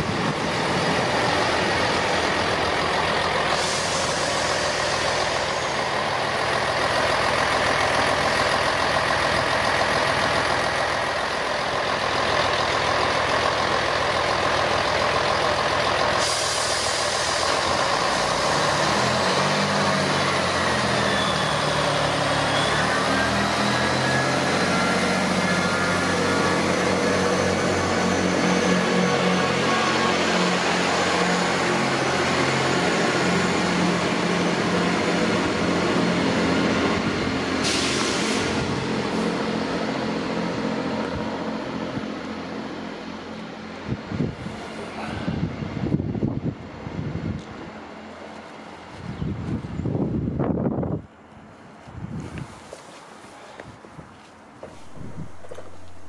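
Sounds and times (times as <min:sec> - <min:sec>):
train diesel engines running: 0:00.0 - 0:56.0.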